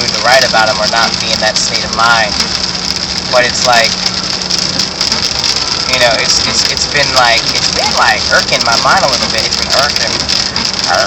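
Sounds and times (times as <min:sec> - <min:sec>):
constant hiss: 0:00.0 - 0:11.0
low engine hum: 0:00.0 - 0:11.0.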